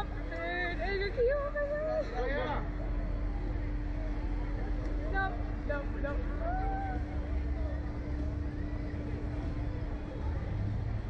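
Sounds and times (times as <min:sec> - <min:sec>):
droning hum: 0:00.0 - 0:11.0.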